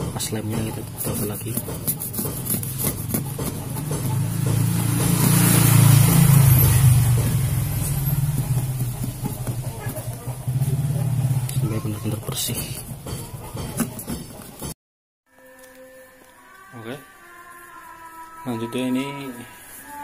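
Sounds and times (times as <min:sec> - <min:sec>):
cloth scrubbing glass: 0:00.4 - 0:10.9
vehicle engine passing by: 0:02.2 - 0:13.0.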